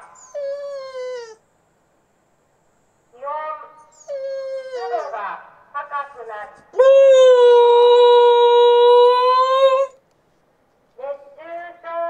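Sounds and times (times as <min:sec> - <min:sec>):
dog howling: 0:00.0 - 0:01.4, 0:03.9 - 0:05.2, 0:06.8 - 0:10.0.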